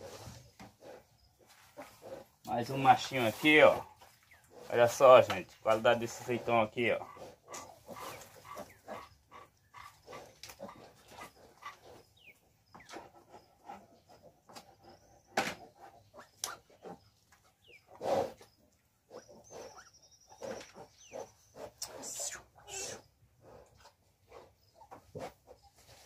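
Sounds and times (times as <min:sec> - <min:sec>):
pigs grunting: 0:00.0 - 0:17.2, 0:17.8 - 0:25.5.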